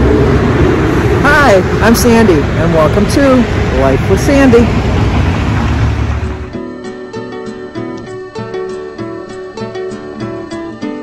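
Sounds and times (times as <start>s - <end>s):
road traffic rumble: 0.0s - 6.6s
vehicle engine running: 0.0s - 6.6s
woman talking: 1.2s - 4.8s.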